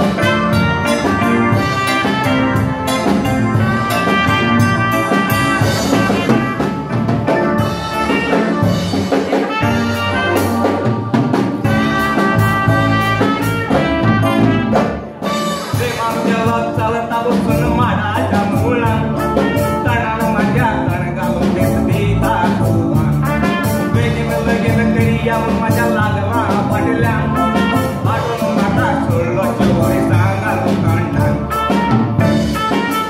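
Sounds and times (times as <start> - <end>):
brass band music with drums: 0.0 - 33.0.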